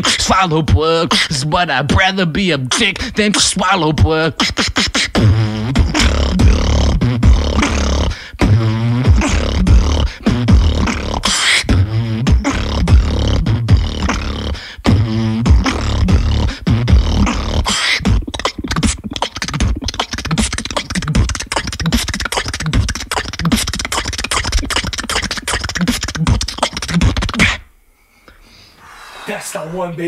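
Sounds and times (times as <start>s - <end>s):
beatboxing bass kicks: 0.0s - 27.7s
beatboxed snare and hi-hat clicks: 2.7s - 27.6s.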